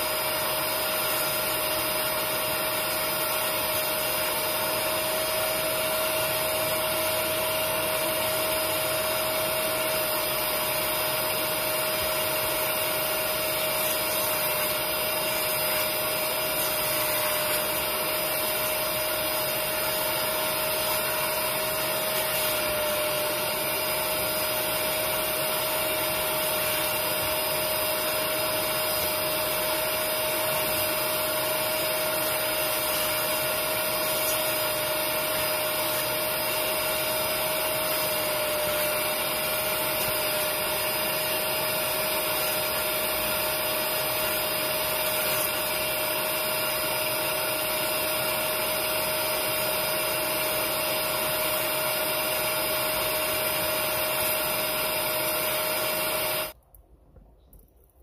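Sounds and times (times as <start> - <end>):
upholstery extractor whining: 0.0 - 56.6
nozzle sucking liquid: 8.0 - 56.6.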